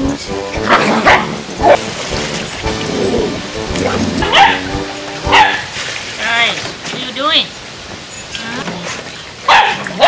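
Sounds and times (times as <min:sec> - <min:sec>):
music with held notes: 0:00.0 - 0:05.8
water splashing: 0:00.5 - 0:07.9
dog barking: 0:00.7 - 0:01.8, 0:04.2 - 0:04.7, 0:05.3 - 0:05.7, 0:09.5 - 0:10.0.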